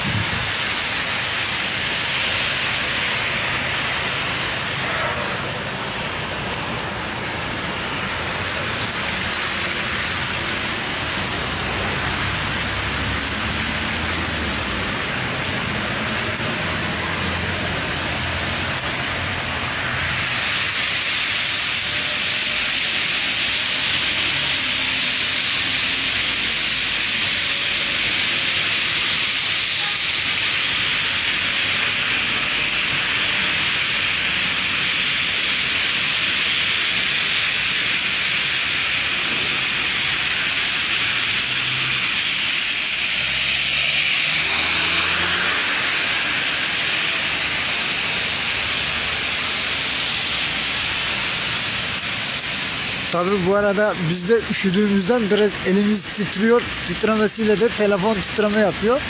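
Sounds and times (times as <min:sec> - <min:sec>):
faint low traffic rumble: 0:00.0 - 0:59.0
wind and wet snowfall hiss: 0:00.0 - 0:59.0.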